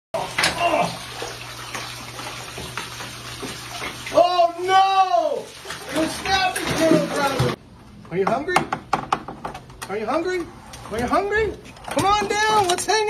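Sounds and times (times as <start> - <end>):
person exclaiming: 0.2 - 1.1, 4.1 - 7.6
water splashing and running: 0.2 - 7.6.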